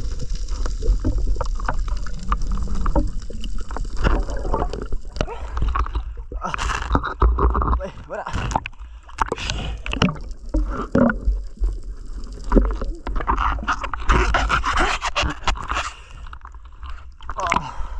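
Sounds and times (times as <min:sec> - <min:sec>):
low underwater rumble: 0:00.0 - 0:14.1
knocks and scrapes: 0:00.6 - 0:11.4, 0:12.5 - 0:17.0.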